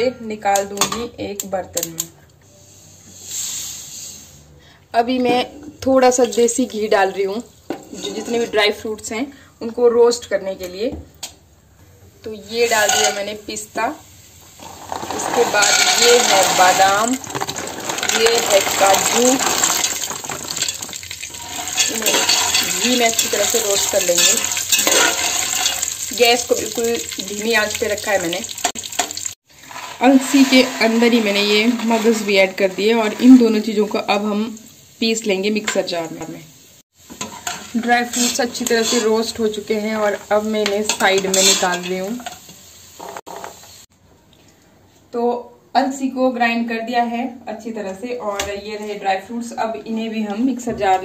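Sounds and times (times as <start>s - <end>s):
metal ladle stirring: 14.6s - 26.0s
nuts clattering against steel pot: 14.6s - 26.1s.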